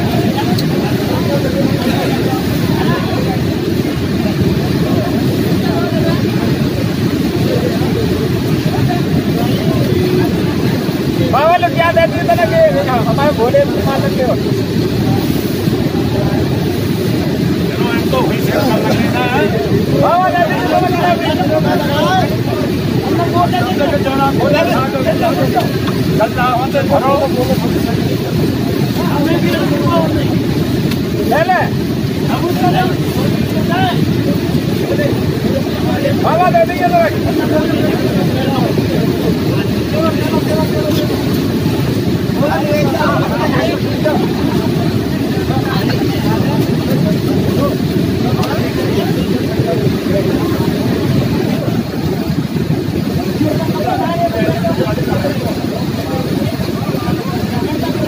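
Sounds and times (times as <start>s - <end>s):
fast-flowing river rushing: 0.0s - 58.0s
men talking: 0.0s - 58.0s.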